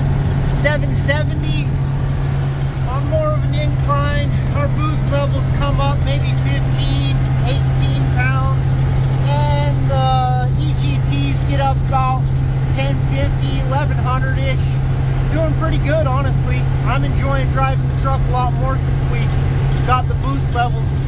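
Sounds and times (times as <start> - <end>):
truck engine drone: 0.0 - 21.0
person speaking: 2.7 - 21.0.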